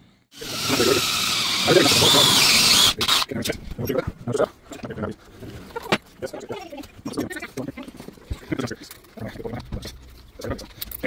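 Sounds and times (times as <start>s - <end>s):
power drill boring wood: 0.3s - 3.3s
high drill squeal: 0.4s - 3.2s.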